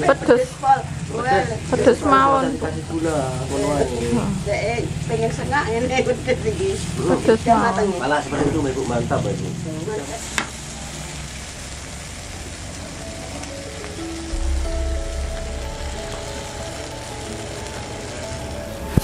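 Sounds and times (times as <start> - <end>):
eggplant sizzling in oil: 0.0 - 19.0
background music with bass: 14.2 - 19.0.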